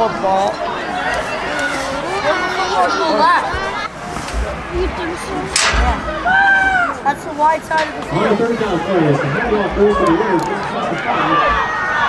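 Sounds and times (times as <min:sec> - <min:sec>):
scattered voices: 0:00.0 - 0:12.0.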